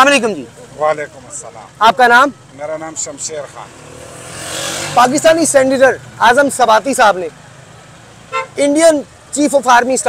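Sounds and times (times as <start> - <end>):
motor vehicle passing: 0.1 - 9.3.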